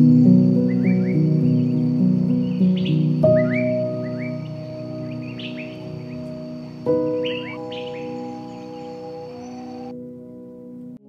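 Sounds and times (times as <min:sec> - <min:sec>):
small birds chirping: 0:00.0 - 0:09.9
slow soft piano music: 0:00.0 - 0:11.0.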